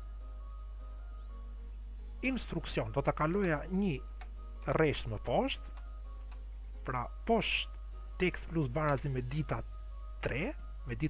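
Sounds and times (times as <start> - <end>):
low electrical hum: 0.0 - 11.0
person speaking: 2.2 - 5.8, 6.8 - 11.0.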